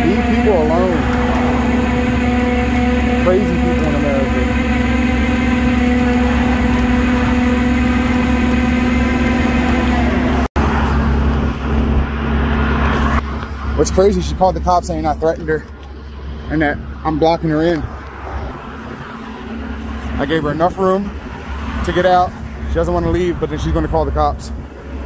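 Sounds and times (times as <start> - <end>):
tow truck engine idling: 0.0 - 17.0.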